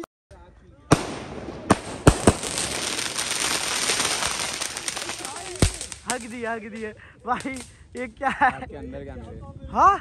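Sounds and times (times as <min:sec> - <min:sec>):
firework shells bursting: 0:00.9 - 0:06.3
firework crackle: 0:00.9 - 0:07.7.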